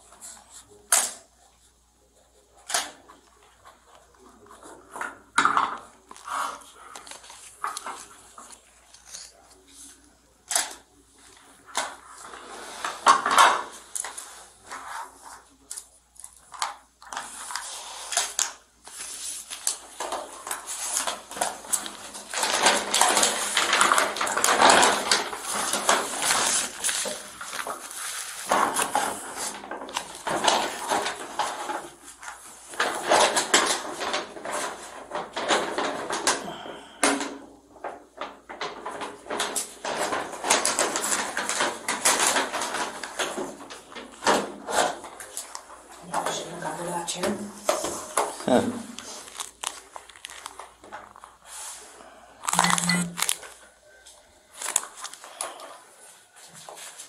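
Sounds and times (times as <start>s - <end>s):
rustling and crinkling of papers: 0.0s - 57.0s
small items clicking and clattering: 15.7s - 36.4s, 37.0s - 51.3s.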